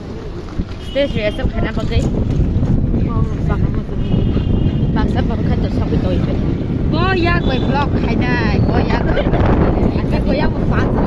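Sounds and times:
wind buffeting microphone: 0.0s - 11.0s
women talking: 0.8s - 2.3s, 2.9s - 11.0s.

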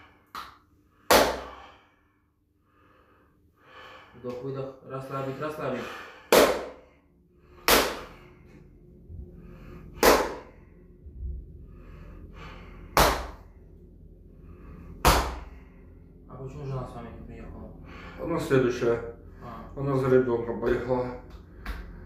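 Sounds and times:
faint breathing: 0.0s - 20.2s, 20.8s - 22.0s.

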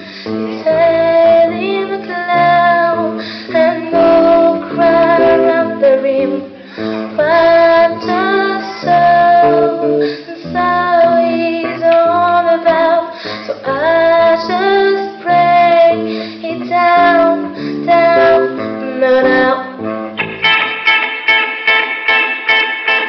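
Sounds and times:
woman singing into a microphone: 0.0s - 19.9s
band with guitar: 0.0s - 23.0s.

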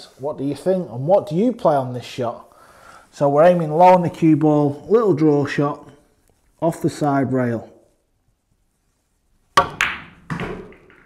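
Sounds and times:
cue tip striking cue ball: 9.6s - 11.0s
dull knock of balls: 9.6s - 11.0s.

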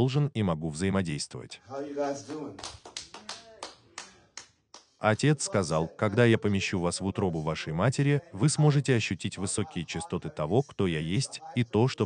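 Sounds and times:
person speaking: 5.0s - 12.0s.

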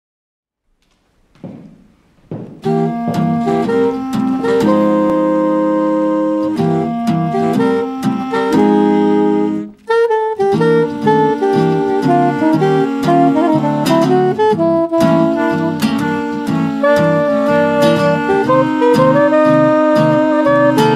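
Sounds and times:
swing jazz on saxophones and clarinet: 2.6s - 20.9s.

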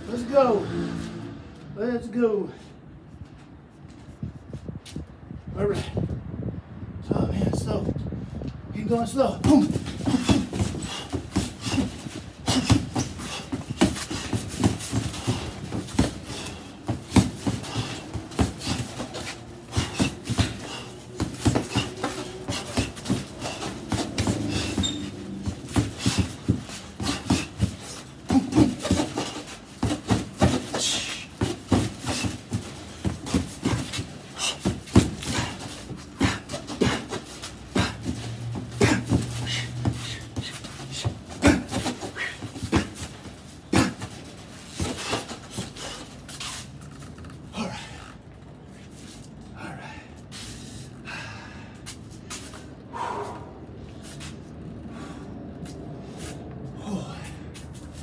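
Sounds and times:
boxing gloves punching heavy bag: 9.0s - 46.7s
sharp exhaled breaths: 9.7s - 46.8s, 49.1s - 57.6s.

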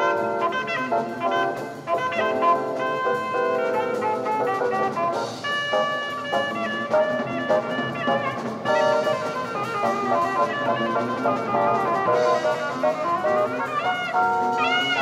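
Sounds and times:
drum kit: 0.0s - 15.0s
trumpet and saxophone horn lines: 0.0s - 15.0s.

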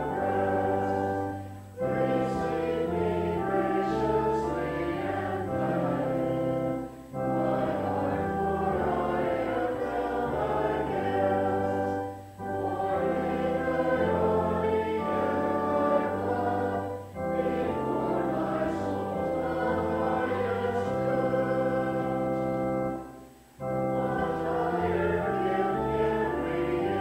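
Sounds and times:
congregation singing a hymn: 0.0s - 27.0s
keyboard accompaniment: 0.0s - 27.0s.

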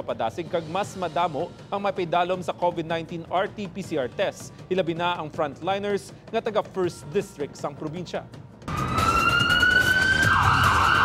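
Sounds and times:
police siren wailing: 8.7s - 11.0s.

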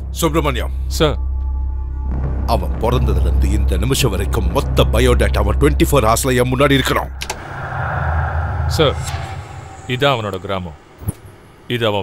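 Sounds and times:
low hum: 6.4s - 11.7s.

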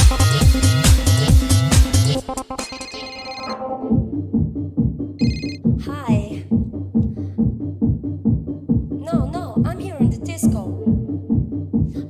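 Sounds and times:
electronic dance music: 0.0s - 3.6s
high electronic beeping tone: 2.6s - 3.6s, 5.2s - 5.6s
ringing synth tones: 2.6s - 3.7s, 5.2s - 5.6s.

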